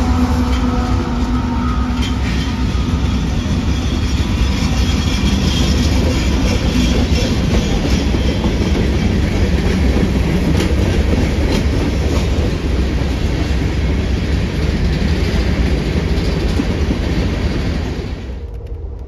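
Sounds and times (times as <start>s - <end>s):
freight train rumble: 0.0s - 19.0s
wheels clacking over rail joints: 1.9s - 17.9s.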